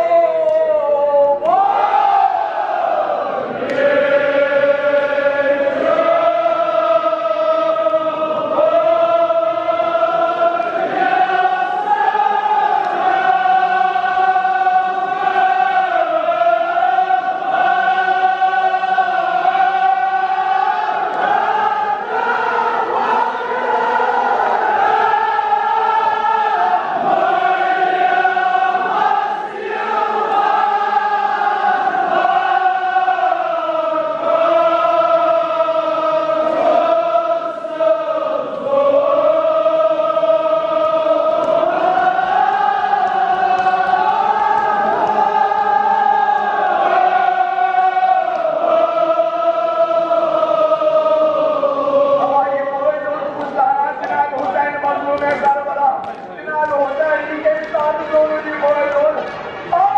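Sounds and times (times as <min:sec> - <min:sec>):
men chanting in unison: 0:00.0 - 0:59.2.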